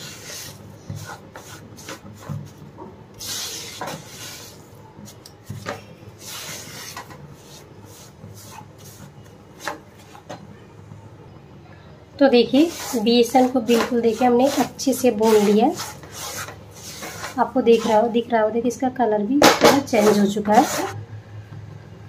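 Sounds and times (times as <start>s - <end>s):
spatula scraping a pan: 0.0s - 9.8s, 12.4s - 18.1s, 19.6s - 21.0s.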